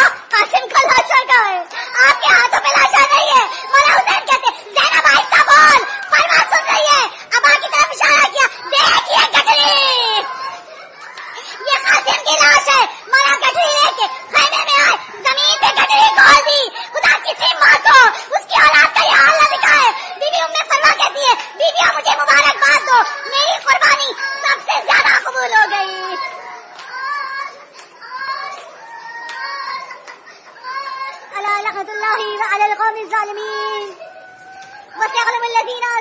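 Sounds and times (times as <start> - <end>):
high-pitched voices wailing: 0.0 - 36.0
women weeping and wailing: 33.8 - 35.3.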